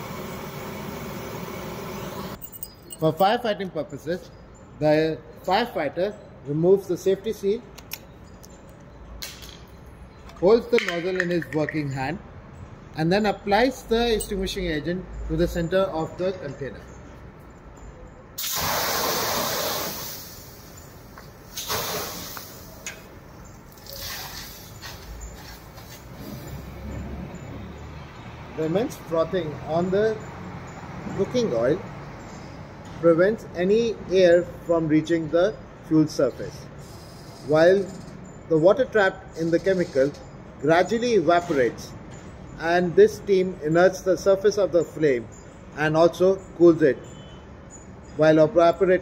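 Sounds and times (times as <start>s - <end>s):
oil burning with flames: 0.0s - 2.4s
fire extinguisher hissing spray: 18.4s - 20.7s, 21.4s - 22.8s, 23.8s - 25.7s.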